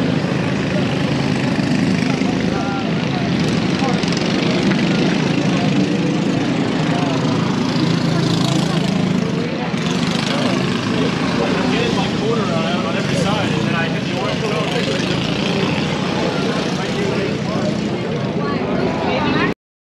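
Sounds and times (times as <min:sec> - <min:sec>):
racing kart engines: 0:00.0 - 0:19.6.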